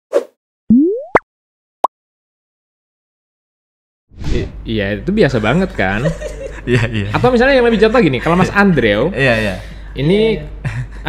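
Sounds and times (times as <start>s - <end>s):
cartoon pop: 0.1s - 1.2s.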